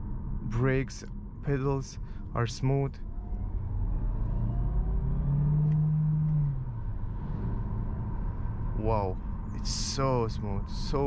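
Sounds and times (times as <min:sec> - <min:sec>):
road and drivetrain rumble: 0:00.0 - 0:11.0.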